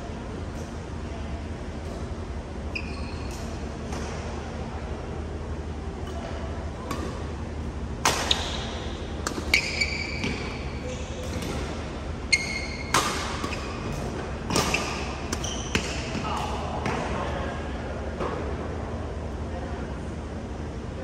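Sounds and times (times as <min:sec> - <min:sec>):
shoes squeaking on floor: 0:02.7 - 0:03.6, 0:09.4 - 0:11.3, 0:12.3 - 0:13.9, 0:14.5 - 0:16.1
racket hitting shuttlecock: 0:06.0 - 0:07.3, 0:08.0 - 0:10.6, 0:11.2 - 0:17.0.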